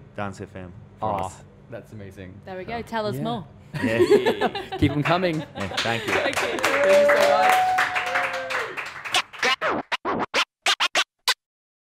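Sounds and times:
turntable scratches: 9.1s - 11.4s.

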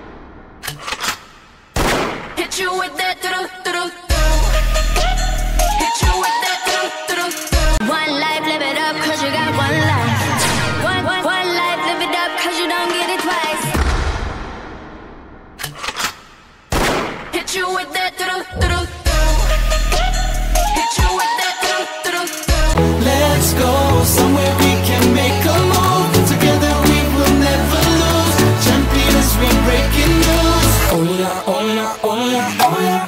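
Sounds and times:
deep boom: 0.0s - 0.6s, 13.8s - 15.6s, 18.6s - 20.1s
gunshots: 0.0s - 2.7s, 10.4s - 11.0s, 13.7s - 17.6s
music: 3.0s - 13.8s, 18.2s - 33.0s.

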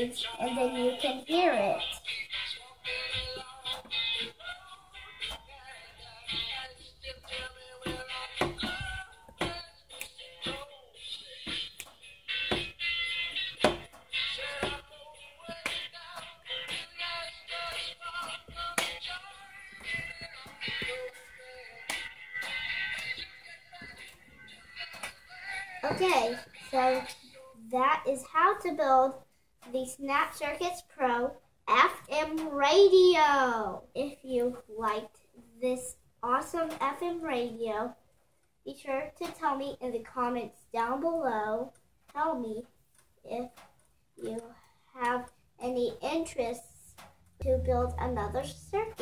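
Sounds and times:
music through small radio speaker: 0.0s - 32.7s, 46.8s - 49.0s.

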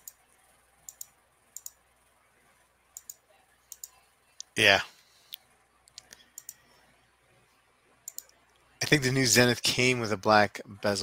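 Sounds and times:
computer mouse clicks: 0.0s - 1.8s, 2.9s - 4.5s, 5.3s - 6.8s, 8.0s - 8.7s.

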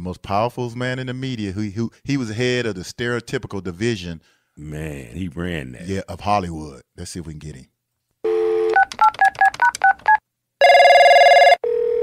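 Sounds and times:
telephone dial tone: 8.3s - 12.0s
telephone line ringing tone: 10.6s - 12.0s.

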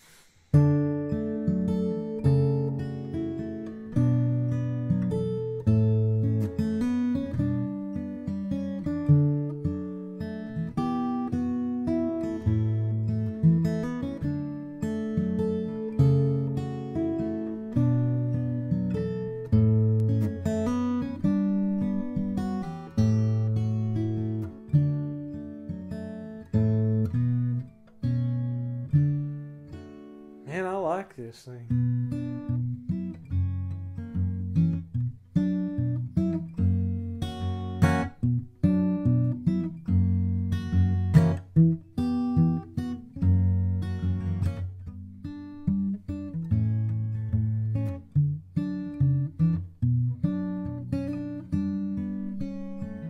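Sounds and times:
acoustic guitar bass notes and chords: 0.0s - 53.0s.

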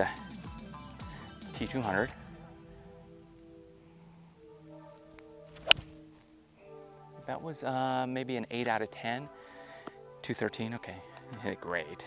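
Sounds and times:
soft background music: 0.0s - 12.0s
golf club striking ball: 5.5s - 6.1s.

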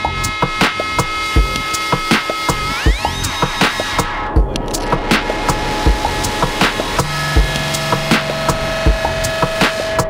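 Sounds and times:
clicky percussion beat: 0.0s - 10.0s
held synth tones: 0.3s - 9.9s
deep kick drum: 4.4s - 6.8s, 7.4s - 9.6s.

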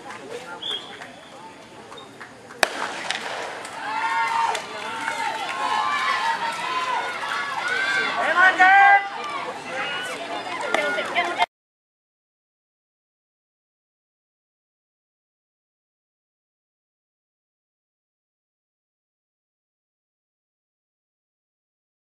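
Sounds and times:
starting pistol shot: 2.6s - 3.8s
spectators shouting and cheering: 2.6s - 11.5s.

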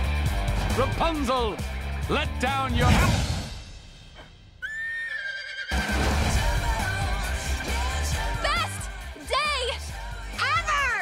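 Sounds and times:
horse whinnying: 4.6s - 6.0s.

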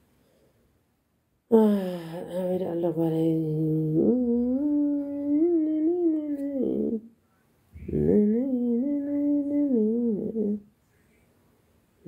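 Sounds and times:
person humming: 1.5s - 7.1s, 7.8s - 10.7s.

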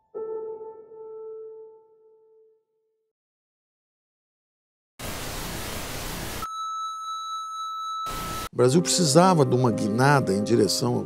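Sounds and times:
television static hiss: 5.0s - 6.4s.

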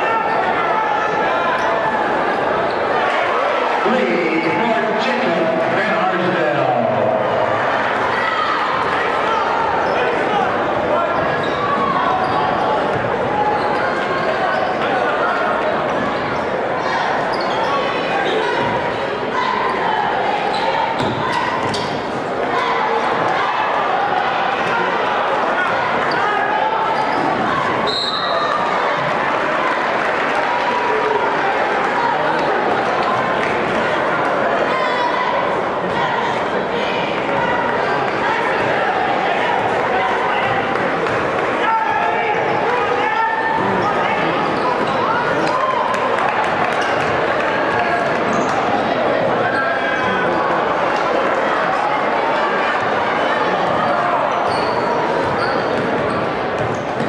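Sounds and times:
crowd noise and voices: 0.0s - 57.0s.

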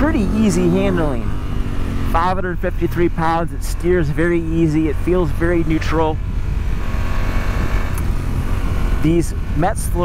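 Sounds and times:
motorcycle engine running: 0.0s - 10.0s
wind and road noise: 0.0s - 10.0s.

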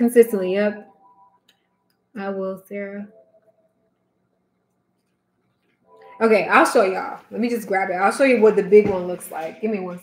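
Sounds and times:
woman speaking: 0.0s - 1.0s, 2.1s - 3.2s, 6.0s - 10.0s.

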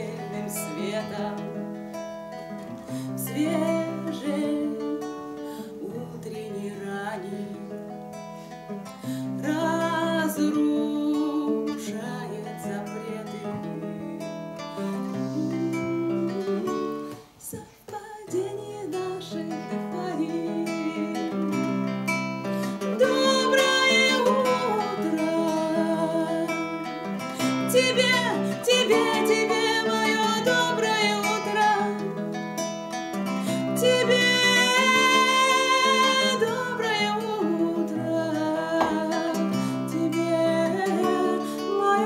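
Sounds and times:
woman singing: 0.0s - 1.9s, 2.5s - 8.1s, 8.7s - 32.4s, 33.1s - 42.0s
acoustic guitar: 0.0s - 42.0s.

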